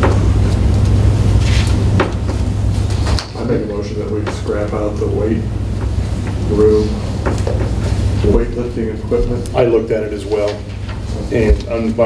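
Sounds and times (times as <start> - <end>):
steady low hum: 0.0 - 12.0
paper rustling: 0.8 - 1.8.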